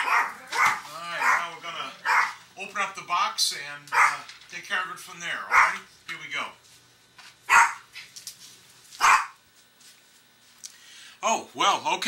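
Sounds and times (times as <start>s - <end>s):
dog barking: 0.0s - 2.4s, 3.9s - 4.3s, 5.5s - 5.9s, 7.5s - 7.9s, 9.0s - 9.4s.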